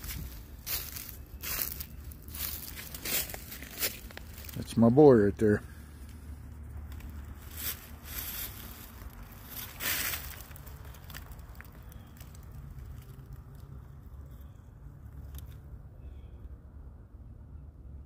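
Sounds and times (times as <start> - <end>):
low rumble of wind buffeting: 0.0 - 18.0.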